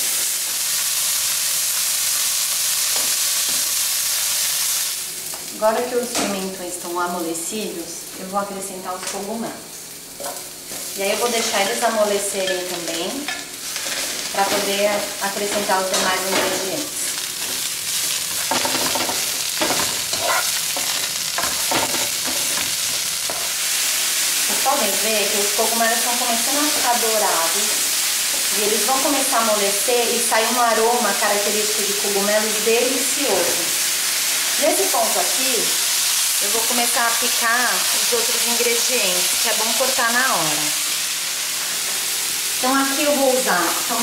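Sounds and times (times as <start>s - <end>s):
vegetables sizzling in oil: 0.0s - 44.0s
wooden spoon scraping: 13.6s - 23.6s.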